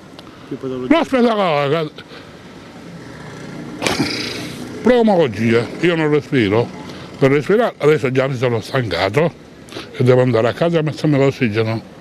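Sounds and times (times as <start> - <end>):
road vehicle passing: 0.0 - 12.0
short sharp noise: 3.8 - 4.7.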